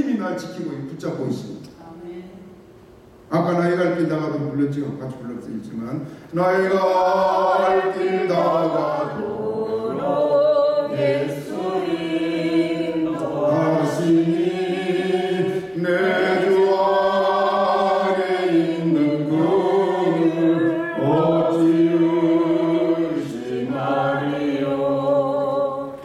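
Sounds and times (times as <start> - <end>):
man singing a hymn: 6.3 - 10.4, 13.2 - 23.8.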